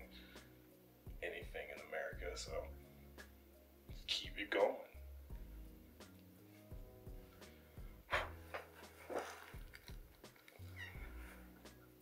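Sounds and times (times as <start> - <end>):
faint background music: 0.0 - 12.0
high falling squeak: 10.7 - 11.2.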